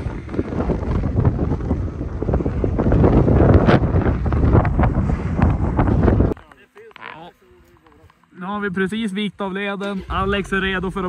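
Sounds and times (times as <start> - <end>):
wind buffeting microphone: 0.0 - 6.4, 10.0 - 11.0.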